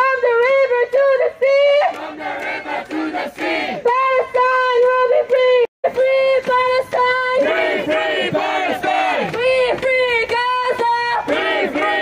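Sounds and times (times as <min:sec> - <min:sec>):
woman leading on a microphone: 0:00.0 - 0:01.9, 0:03.8 - 0:07.5, 0:09.3 - 0:11.3
crowd shouting a chant: 0:01.8 - 0:04.3, 0:06.6 - 0:12.0.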